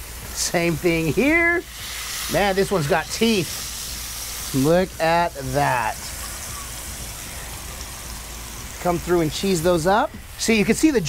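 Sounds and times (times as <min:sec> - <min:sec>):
burger patties sizzling on griddle: 0:00.0 - 0:11.0.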